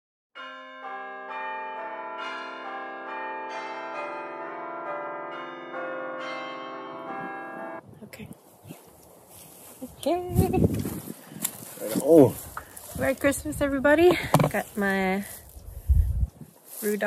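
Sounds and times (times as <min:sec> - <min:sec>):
bell chimes playing a tune: 0:00.4 - 0:07.8.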